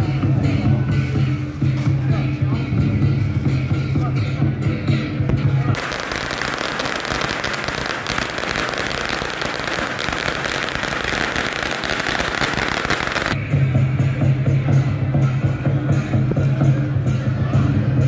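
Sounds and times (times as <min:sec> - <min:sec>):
firecrackers crackling: 0:05.7 - 0:13.4.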